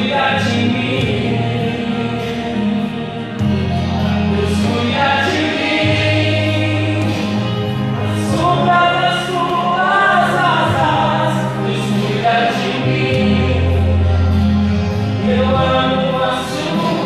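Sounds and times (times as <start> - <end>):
man singing into a microphone: 0.0 - 14.4, 15.1 - 17.0
long-held low accompaniment notes: 0.0 - 17.0.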